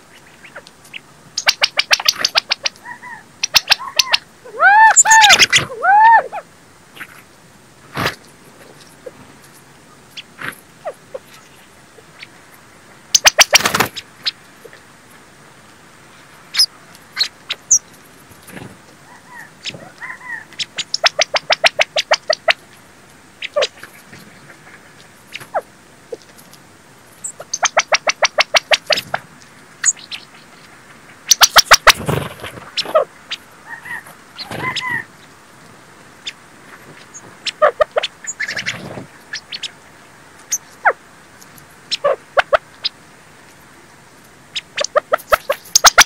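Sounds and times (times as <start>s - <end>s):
bird calling: 0.0s - 7.3s, 8.0s - 14.8s, 16.2s - 17.9s, 18.5s - 22.8s, 23.4s - 26.3s, 27.2s - 35.4s, 36.2s - 41.0s, 41.8s - 43.0s, 44.5s - 46.0s.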